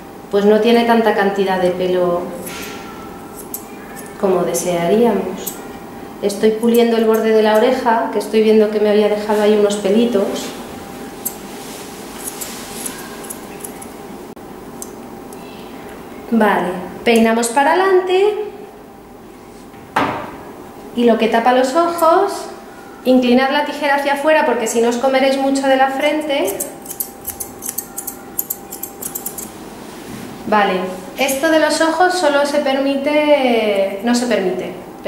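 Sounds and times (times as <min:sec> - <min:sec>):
steady background hiss: 0:00.0 - 0:35.0
scissors snipping hair: 0:02.4 - 0:04.2, 0:05.4 - 0:05.7, 0:06.6 - 0:07.8, 0:12.2 - 0:13.9, 0:26.4 - 0:29.5.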